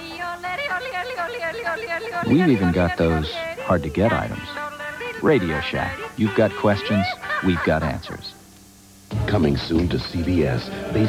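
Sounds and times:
high yodel-like voice: 0.0 - 8.4
commercial music: 9.1 - 11.0.

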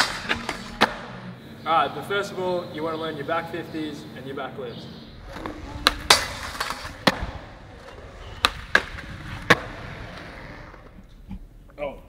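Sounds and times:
skateboard pop and clack: 0.0 - 1.2, 8.4 - 11.0
skateboard wheels rolling on concrete: 0.0 - 1.2, 5.1 - 11.8
skateboard grinding on rail: 5.1 - 11.5.

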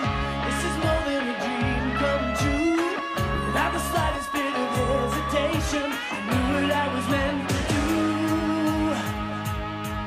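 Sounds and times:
bass: 0.0 - 10.0
person singing: 0.0 - 10.0
drum beat: 2.4 - 10.0.

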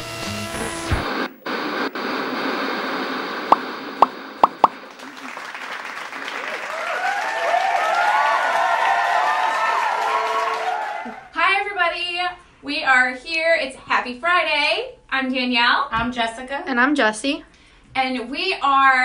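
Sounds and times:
tv static hiss: 0.0 - 5.0
quick pops: 3.5 - 4.8.

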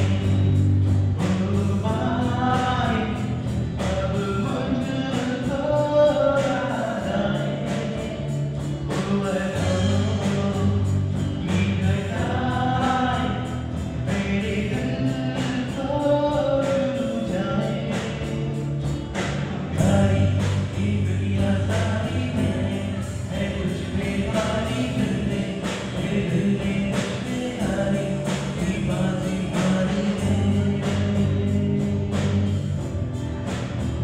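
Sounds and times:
male singer: 0.0 - 33.0
acoustic guitar: 0.0 - 34.0
drums: 0.0 - 34.0
electric bass: 0.0 - 34.0
keyboard: 0.0 - 34.0.

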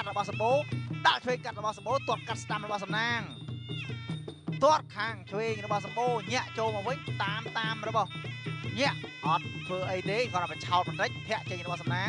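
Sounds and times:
commentator speaking: 0.0 - 3.4, 4.6 - 8.1, 8.7 - 12.0
shrill reed pipe melody: 0.0 - 12.0.

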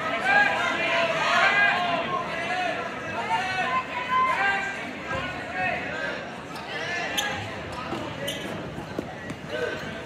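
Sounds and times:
people calling out in a gym: 0.0 - 8.6.

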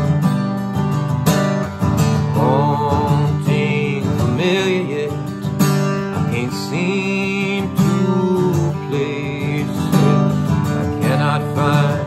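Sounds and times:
acoustic guitar strumming: 0.0 - 12.0
man singing: 2.2 - 12.0.

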